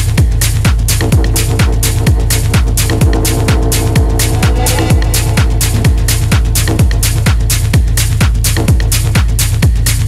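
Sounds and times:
hi-hats: 0.0 - 10.0
techno kick drum: 0.0 - 10.0
held synth tone: 3.1 - 7.1.

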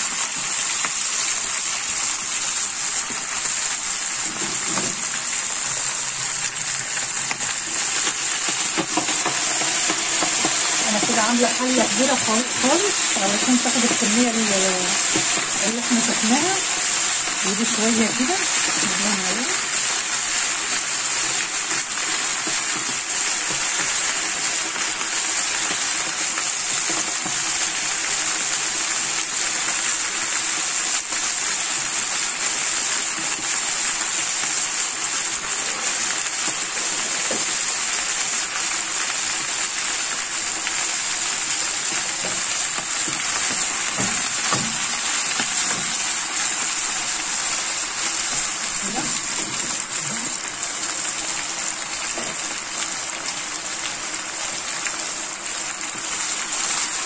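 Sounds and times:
leaves sizzling in a frying pan: 0.0 - 57.0.

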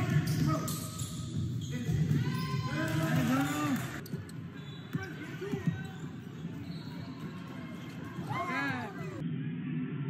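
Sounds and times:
spectators' voices: 5.1 - 9.2.

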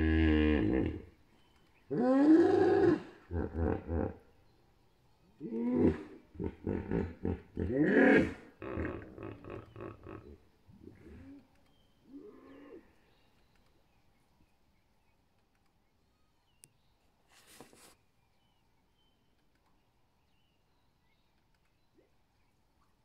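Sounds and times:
hippo rhythmic grunts: 5.8 - 11.5.

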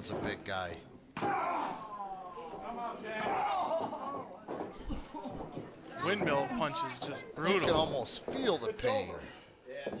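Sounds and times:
men talking and shouting: 0.0 - 10.0.

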